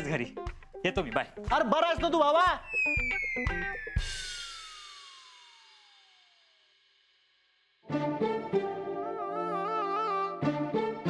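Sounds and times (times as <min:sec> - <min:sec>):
falling whistle-like glide: 0:02.6 - 0:06.4
cymbal crash: 0:02.7 - 0:07.2.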